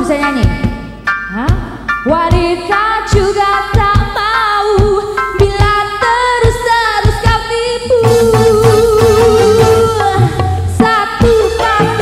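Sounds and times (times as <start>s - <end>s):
drum beats: 0.0s - 12.0s
keyboard: 0.0s - 12.0s
woman singing: 0.0s - 12.0s
electric guitars: 7.9s - 12.0s.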